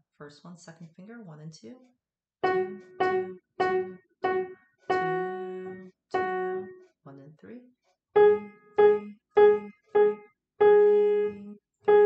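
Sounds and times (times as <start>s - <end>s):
piano note struck: 2.4s - 6.8s.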